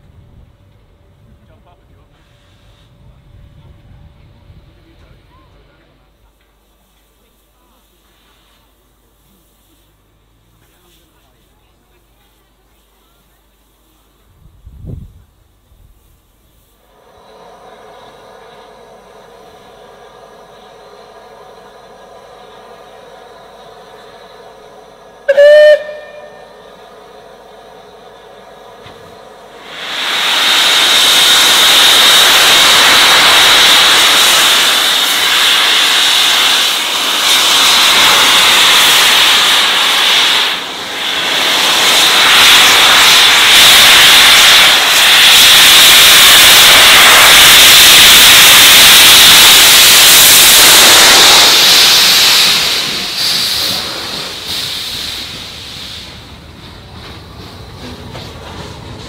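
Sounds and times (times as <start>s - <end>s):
steam hissing: 6.6s - 59.0s
steam locomotive whistle: 25.2s - 26.7s, 30.3s - 52.8s.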